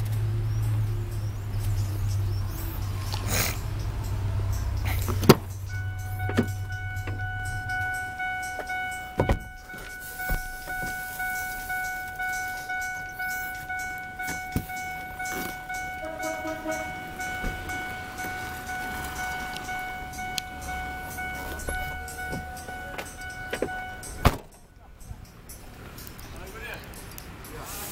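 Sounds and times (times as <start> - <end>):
vehicle warning chime: 0.0 - 27.9.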